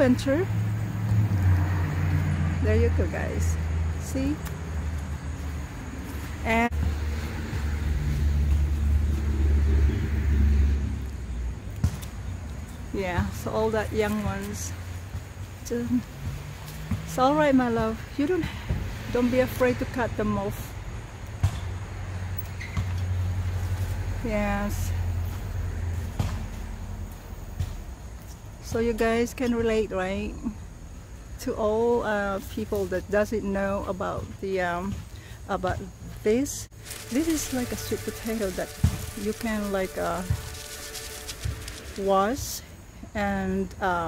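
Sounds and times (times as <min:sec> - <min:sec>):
vehicle engine passing: 0:00.0 - 0:28.0, 0:36.4 - 0:42.9.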